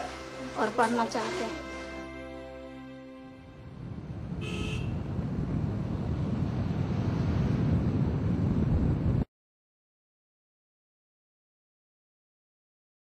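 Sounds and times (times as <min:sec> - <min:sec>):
vehicle rumbling: 0:03.5 - 0:09.2
wind on microphone: 0:03.5 - 0:09.3.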